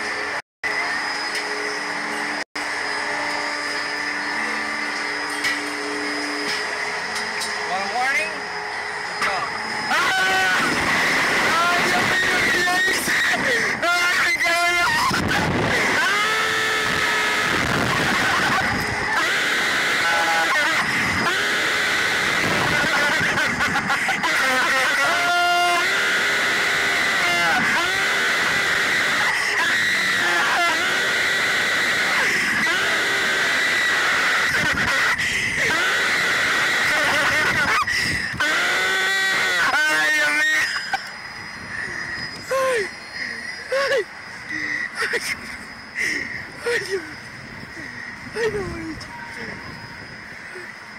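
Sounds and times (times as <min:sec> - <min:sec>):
riders screaming and yelling: 0:00.0 - 0:50.9.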